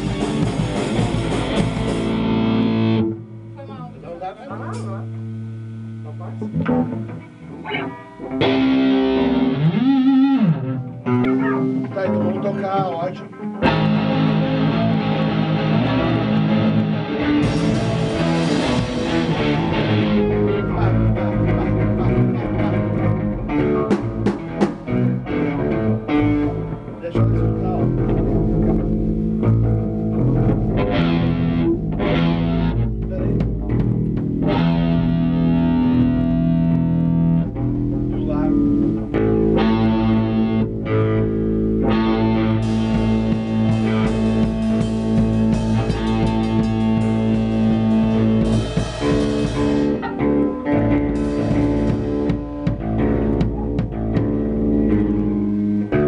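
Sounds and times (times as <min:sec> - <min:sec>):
punk band playing: 0:00.0 - 0:05.2, 0:06.2 - 0:56.0
loose guitar notes: 0:00.0 - 0:56.0.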